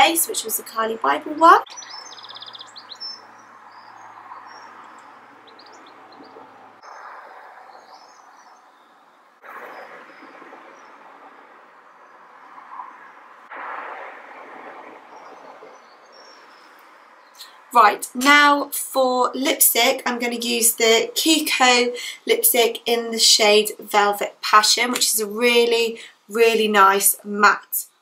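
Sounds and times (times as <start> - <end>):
faint background noise: 0.0 - 28.0.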